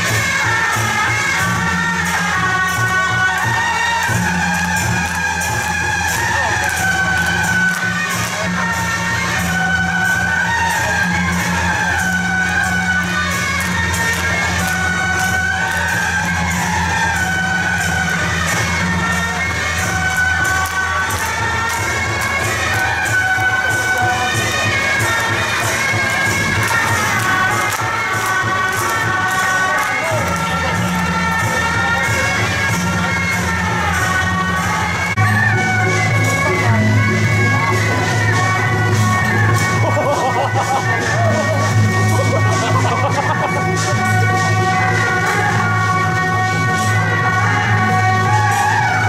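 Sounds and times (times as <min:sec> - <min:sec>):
crowd shouting and cheering: 0:00.0 - 0:49.0.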